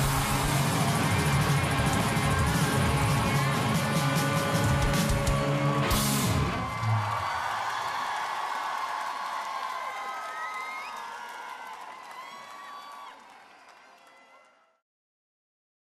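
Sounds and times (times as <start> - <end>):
rock band closing chord: 0.0 - 6.7
guitar feedback: 0.0 - 7.0
crowd cheering: 0.0 - 14.8.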